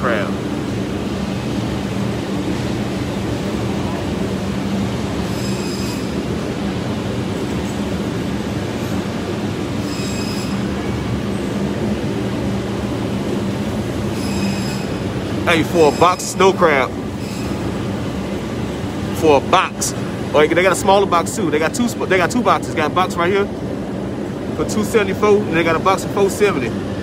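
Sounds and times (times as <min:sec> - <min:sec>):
refrigerated display cases humming: 0:00.0 - 0:27.0.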